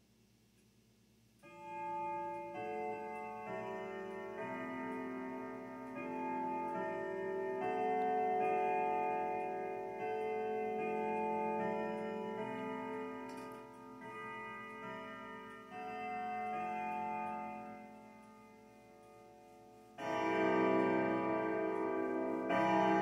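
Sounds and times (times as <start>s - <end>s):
clock chiming a tune: 1.4s - 23.0s.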